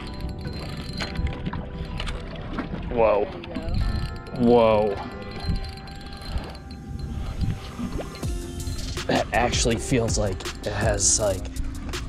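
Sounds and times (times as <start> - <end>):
chime-like music tones: 0.0 - 2.4, 3.5 - 11.5
low wind: 0.0 - 12.0
water noise: 0.0 - 12.0.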